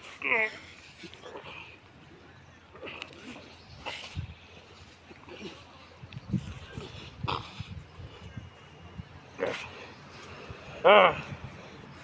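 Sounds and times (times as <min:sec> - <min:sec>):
men grunting and breathing hard: 0:00.0 - 0:08.5, 0:09.3 - 0:12.0.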